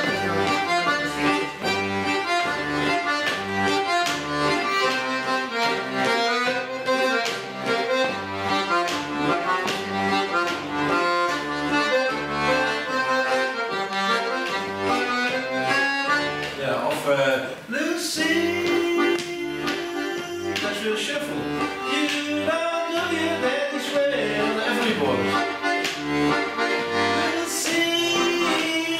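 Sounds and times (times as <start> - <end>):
button accordion playing shuffle: 0.0 - 17.0, 17.8 - 28.9.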